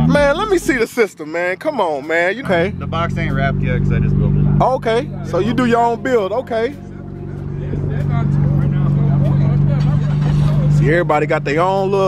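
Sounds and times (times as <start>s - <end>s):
subwoofer playing deep bass: 0.0s - 0.9s, 2.4s - 12.0s.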